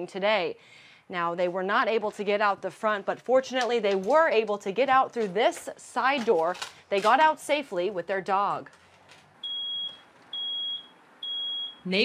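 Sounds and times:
smoke alarm beeping: 0:09.4 - 0:11.9.

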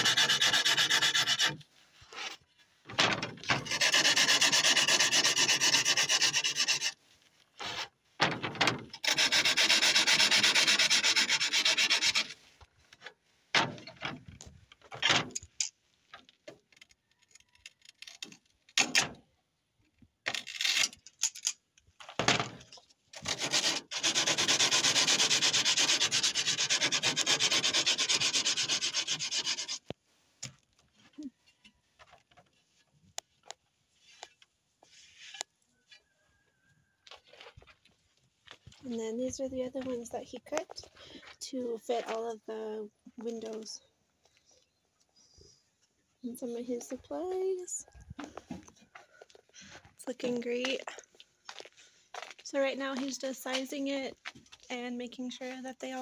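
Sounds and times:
glass edge scraped with abrasive: 0:03.4 - 0:07.0.

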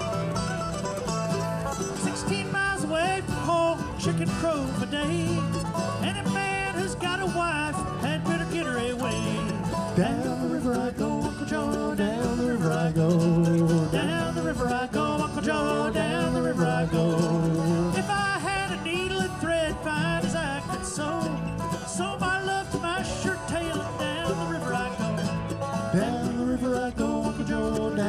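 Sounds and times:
banjo: 0:00.0 - 0:28.0
guitar: 0:00.0 - 0:28.0
mandolin: 0:00.0 - 0:28.0.

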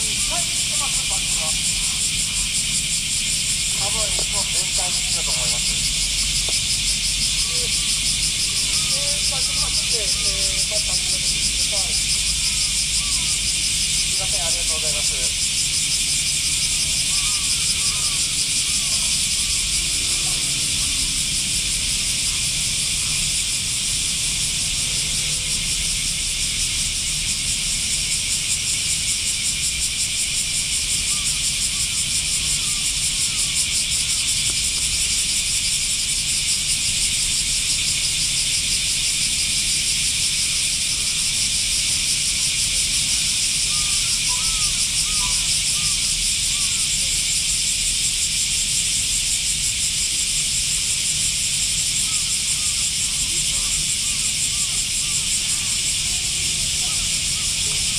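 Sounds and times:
cicada chorus buzzing: 0:00.0 - 0:57.9.

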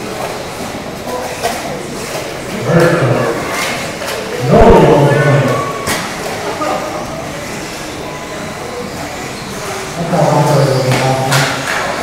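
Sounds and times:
steady room noise: 0:00.0 - 0:12.0
indistinct voice echoing in hall: 0:04.4 - 0:05.9.

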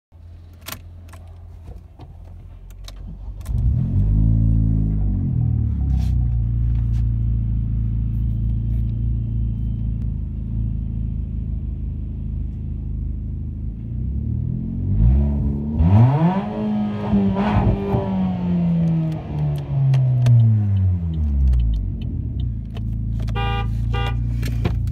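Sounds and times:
car engine starting and idling: 0:00.2 - 0:24.9
car engine revving: 0:03.4 - 0:08.0, 0:13.8 - 0:24.9.

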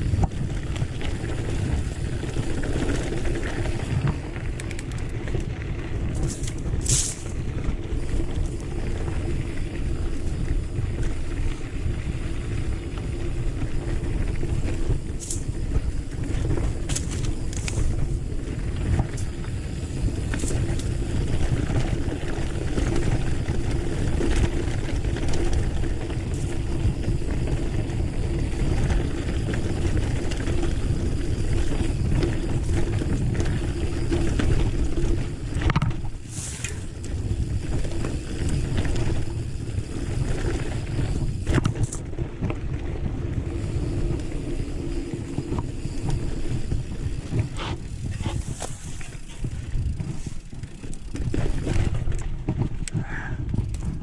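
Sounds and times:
wind on microphone: 0:00.0 - 0:04.3, 0:45.2 - 0:54.0
bike tyres rumbling on dirt: 0:00.0 - 0:54.0.

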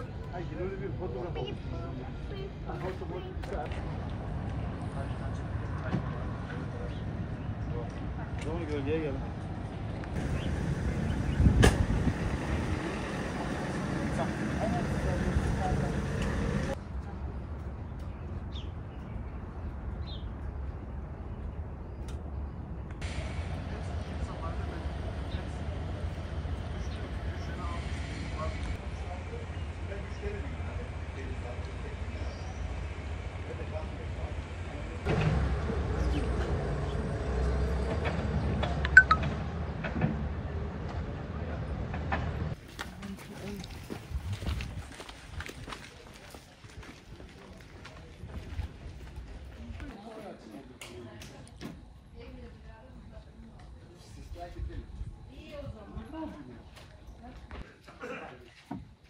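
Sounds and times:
distant indistinct voices: 0:00.0 - 0:17.8, 0:23.0 - 0:42.3
people talking: 0:12.7 - 0:17.2.

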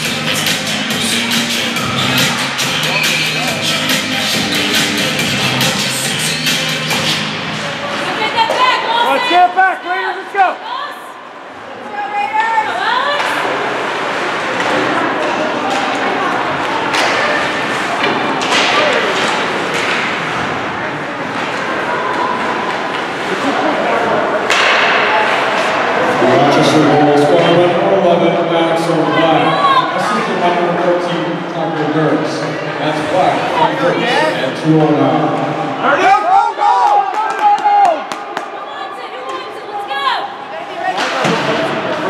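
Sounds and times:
arena music with steady beat: 0:00.0 - 0:07.5
echoing ice rink din: 0:00.0 - 0:42.0
hockey sticks and puck knocks: 0:16.9 - 0:20.6, 0:24.5 - 0:25.9, 0:40.9 - 0:41.8
people shouting: 0:29.0 - 0:30.1.

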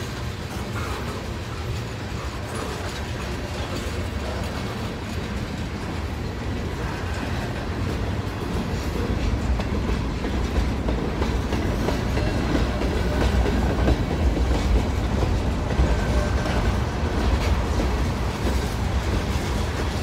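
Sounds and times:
freight train rumbling past: 0:00.0 - 0:20.0
wheels clacking over rail joints: 0:00.0 - 0:20.0.

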